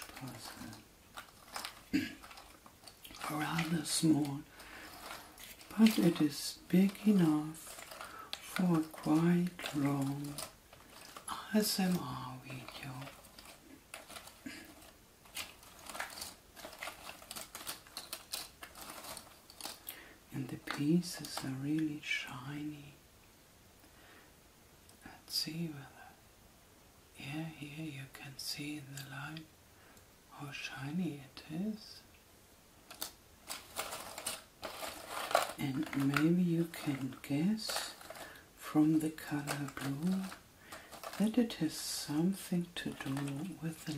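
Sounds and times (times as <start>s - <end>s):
puzzle pieces clicking and rustling: 0.0s - 21.5s, 32.9s - 43.9s.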